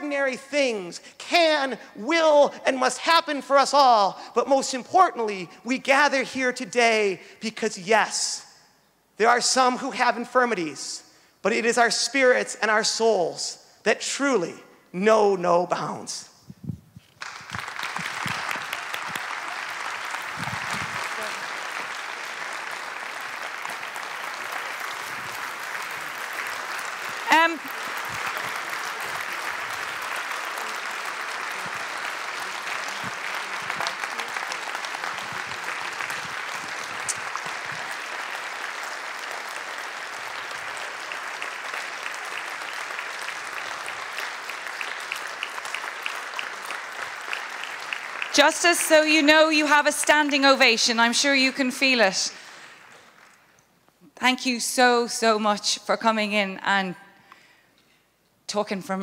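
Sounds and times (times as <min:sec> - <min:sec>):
audience applause: 0:17.2 - 0:51.6, 0:52.3 - 0:53.6.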